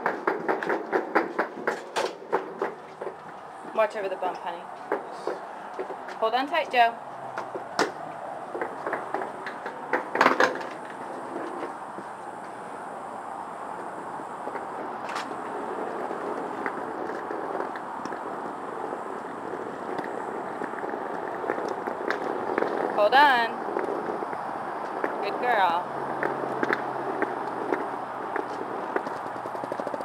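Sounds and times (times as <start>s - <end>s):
suitcase wheels on concrete: 0.0s - 30.0s.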